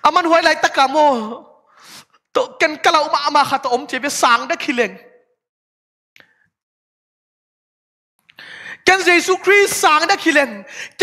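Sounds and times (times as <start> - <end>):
man preaching: 0.0 - 1.4, 2.4 - 5.0, 8.8 - 11.0
man breathing: 8.3 - 8.8.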